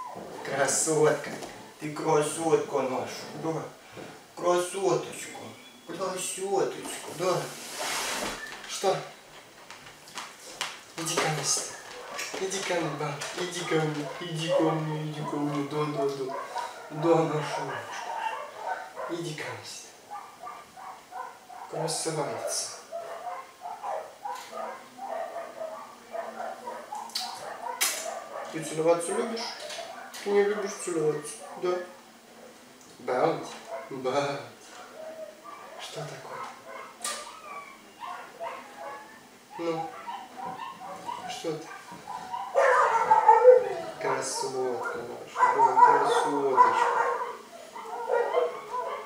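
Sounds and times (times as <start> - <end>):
dog whimpering: 0.0 - 0.2, 34.8 - 49.0.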